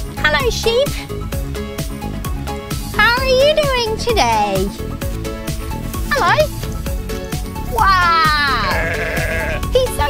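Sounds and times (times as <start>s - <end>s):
background music with steady beat: 0.0s - 10.0s
sheep bleating: 8.0s - 9.7s.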